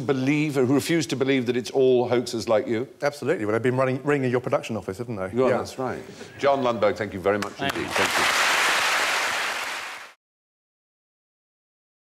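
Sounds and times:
audience applauding: 7.4s - 10.2s.

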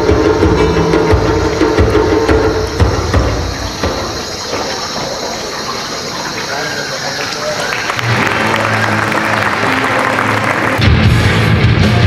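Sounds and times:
drum-heavy music: 0.0s - 4.8s, 8.2s - 12.0s
audience applauding and cheering: 6.3s - 12.0s.

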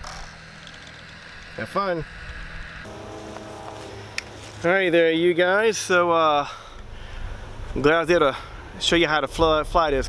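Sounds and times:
steady hum with overtones: 0.0s - 10.0s.

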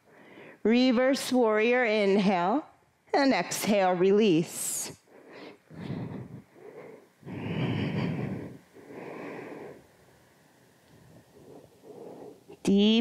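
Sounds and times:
woman breathing heavily: 0.0s - 0.7s, 4.8s - 12.6s.

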